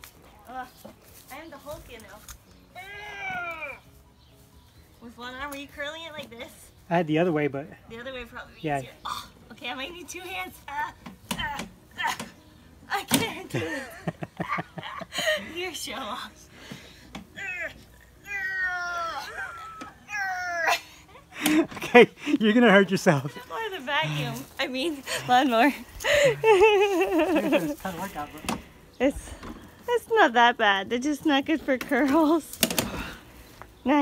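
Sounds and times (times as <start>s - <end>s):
woman straining cries: 2.8s - 3.8s, 17.4s - 21.3s.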